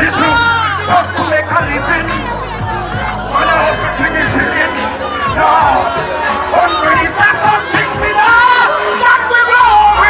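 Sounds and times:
crowd shouting and voices: 0.0s - 10.0s
live reggae music: 0.0s - 10.0s.

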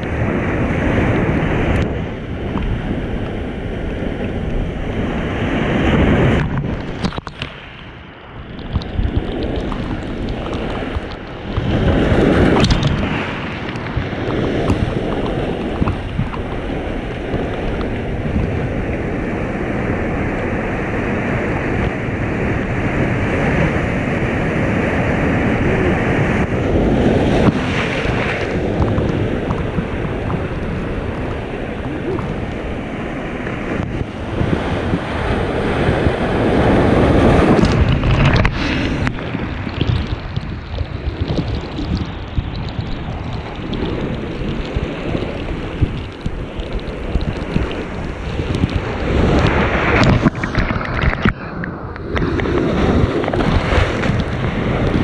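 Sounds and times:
surf breaking against rocks: 0.0s - 55.0s
wind buffeting the microphone: 0.0s - 55.0s.

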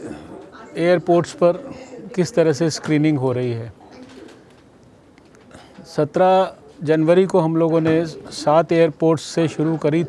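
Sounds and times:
crowded hall background noise: 0.0s - 10.0s
man speaking: 0.8s - 3.8s, 5.8s - 10.0s.

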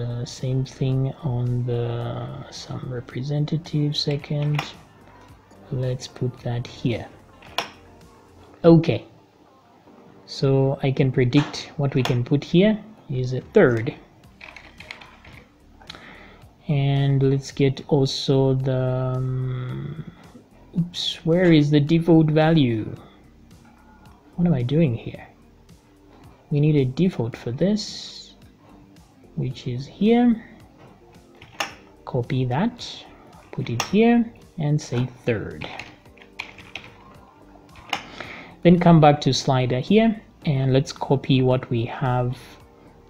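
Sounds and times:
computer keyboard keystrokes: 35.8s - 37.0s.

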